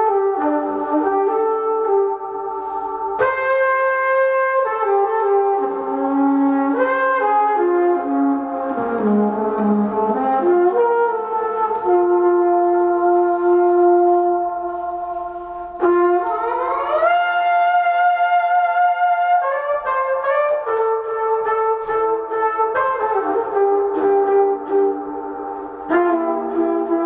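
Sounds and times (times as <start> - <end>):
trumpet with effects: 0.0 - 27.0.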